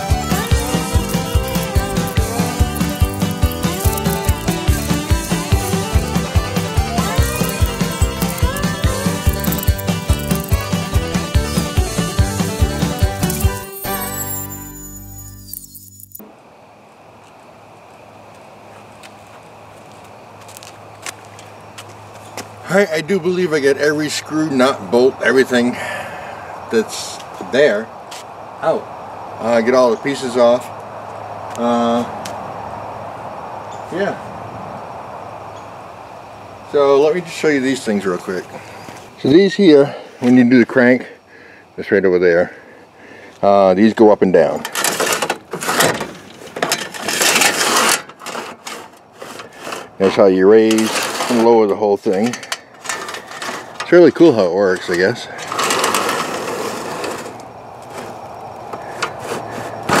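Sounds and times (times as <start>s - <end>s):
metal scraping rattle: 0.2s - 16.2s, 44.6s - 54.0s, 54.8s - 58.2s.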